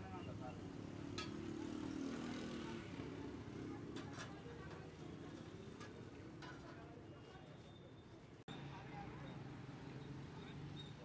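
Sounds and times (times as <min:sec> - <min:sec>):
passing street traffic hum: 0:00.6 - 0:04.0.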